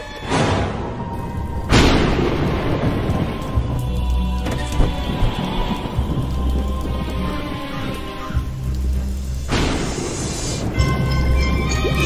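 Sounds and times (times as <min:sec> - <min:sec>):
low bass soundtrack music: 0:00.1 - 0:12.0
steady hiss: 0:03.0 - 0:10.8.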